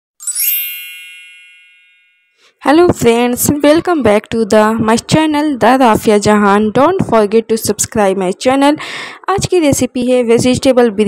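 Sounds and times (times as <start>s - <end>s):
bright high chime: 0.2s - 2.6s.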